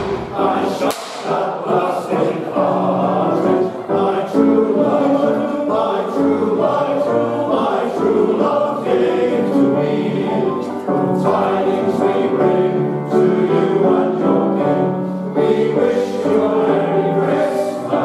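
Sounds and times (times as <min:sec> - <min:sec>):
male voice choir singing: 0:00.0 - 0:18.0.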